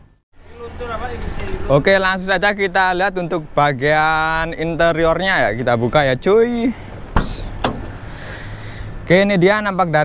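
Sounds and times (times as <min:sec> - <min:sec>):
car door swinging open: 0:07.1 - 0:08.0.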